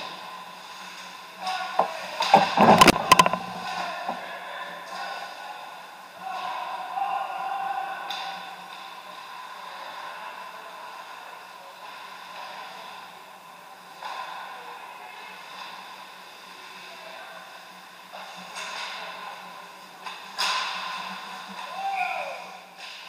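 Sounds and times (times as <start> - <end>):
hockey sticks clacking: 0.9 - 5.3, 18.1 - 23.0.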